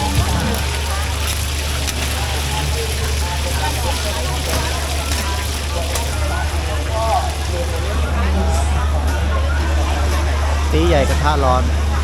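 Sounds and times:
oil sizzling on a griddle: 0.0s - 8.0s
crowd chattering: 0.0s - 12.0s.

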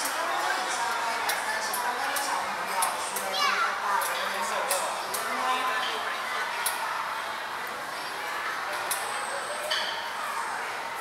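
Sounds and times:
children chattering and calling: 2.4s - 11.0s.

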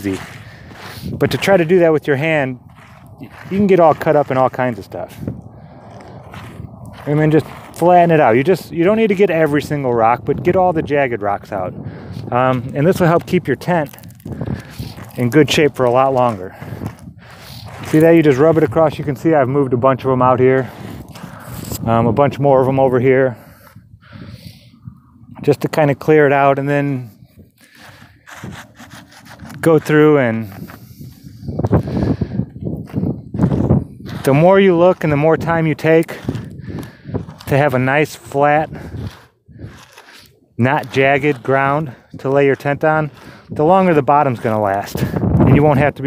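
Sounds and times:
gloved hand scraping stony dirt: 0.0s - 19.4s, 20.2s - 24.8s, 25.4s - 46.0s.

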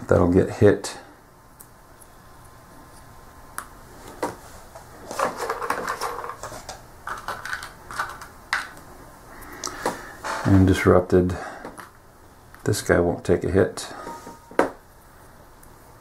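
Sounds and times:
cardboard counters clicking: 5.1s - 8.8s.

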